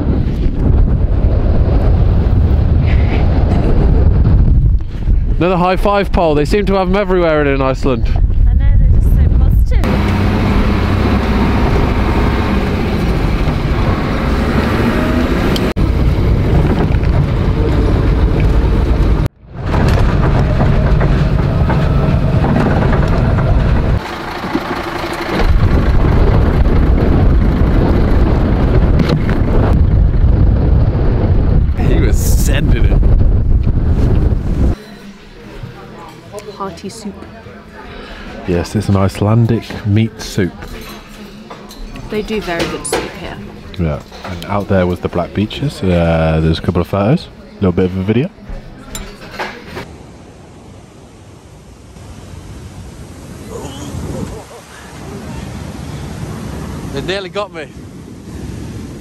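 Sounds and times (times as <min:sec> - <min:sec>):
wind buffeting microphone: 0:00.0 - 0:34.8, 0:50.0 - 0:59.0
bus engine and road drone: 0:09.7 - 0:36.2.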